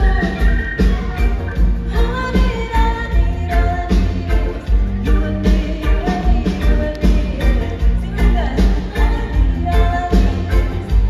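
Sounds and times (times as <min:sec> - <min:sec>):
live band playing: 0:00.0 - 0:11.0
woman singing into microphone: 0:00.0 - 0:11.0.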